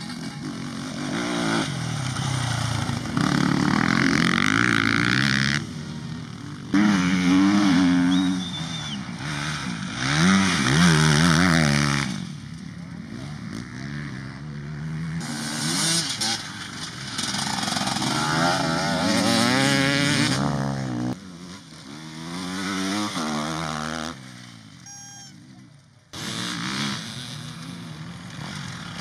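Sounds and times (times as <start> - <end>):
dirt bike engines revving: 0.0 - 29.0.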